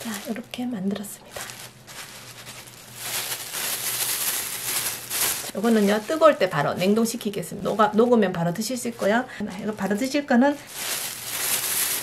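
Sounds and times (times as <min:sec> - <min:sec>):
plastic film crinkling: 0:00.0 - 0:12.0.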